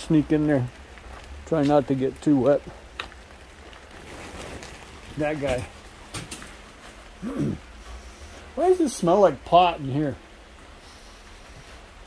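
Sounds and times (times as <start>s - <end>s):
plastic tarp rustling: 0.0s - 10.2s
rain falling: 0.0s - 12.0s.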